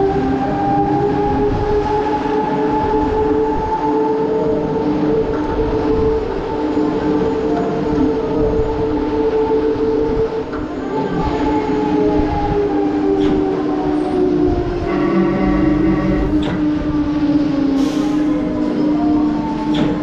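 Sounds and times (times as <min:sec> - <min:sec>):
fairground ride mechanical whine: 0:00.0 - 0:20.0.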